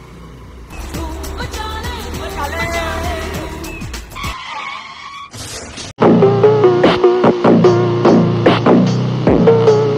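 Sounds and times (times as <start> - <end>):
tyre screeching: 4.0 - 5.9.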